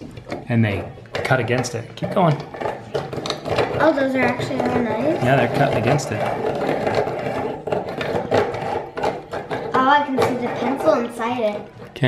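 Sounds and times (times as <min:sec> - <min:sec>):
pencil sharpener grinding: 0:02.4 - 0:10.9.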